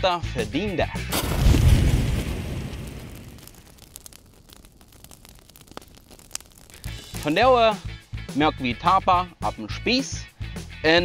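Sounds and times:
deep boom: 1.1 - 4.6
faint crackles: 1.1 - 7.8.

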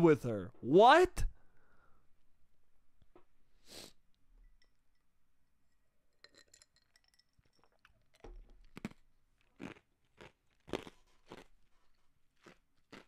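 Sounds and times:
glass clinking: 4.4 - 8.4.

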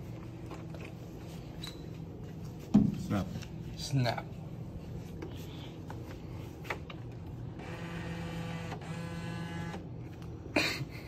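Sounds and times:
bill acceptor motor whirring: 7.5 - 10.0.

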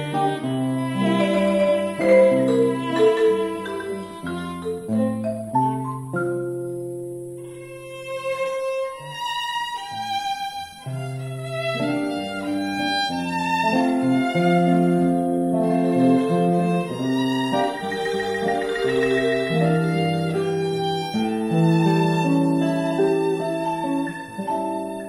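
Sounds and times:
violin melody: 0.0 - 25.0
marimba: 1.0 - 7.2, 17.4 - 20.8.

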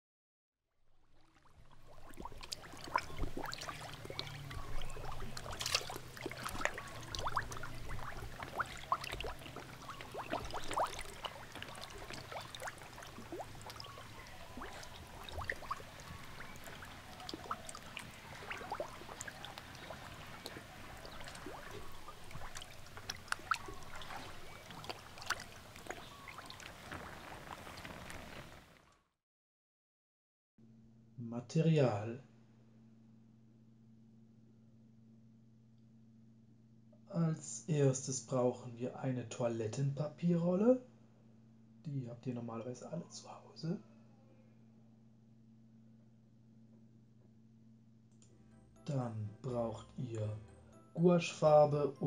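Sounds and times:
water bubbling and gurgling: 1.0 - 28.7
water dripping: 1.1 - 28.6.

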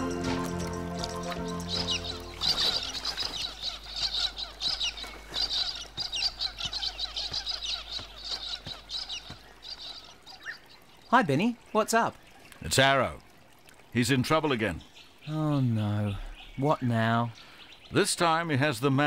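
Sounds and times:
background music: 0.0 - 3.1
high bird chirps: 0.0 - 11.1.

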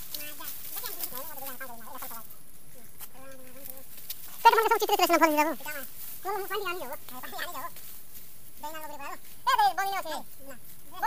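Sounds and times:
short wavering vocal calls: 4.4 - 5.8.

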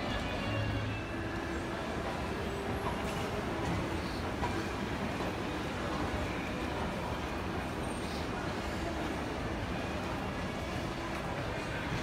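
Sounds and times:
train rumbling inside carriage: 0.0 - 12.0.

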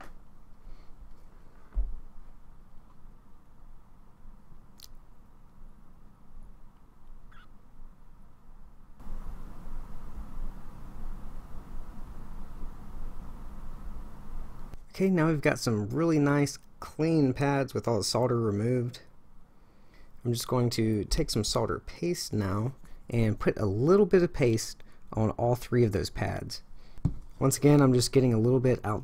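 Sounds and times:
background hum and hiss: 0.0 - 29.0.

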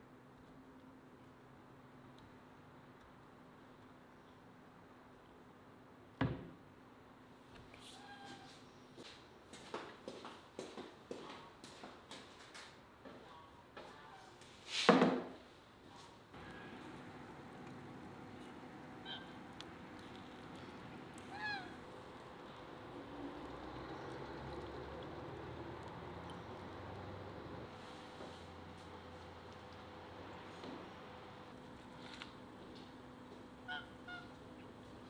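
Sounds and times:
animal calls: 19.0 - 19.5, 21.1 - 21.8, 33.6 - 34.4.

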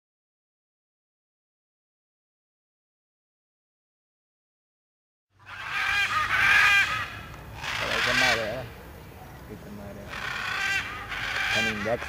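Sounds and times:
macaws squawking: 5.4 - 8.7, 9.8 - 12.0.

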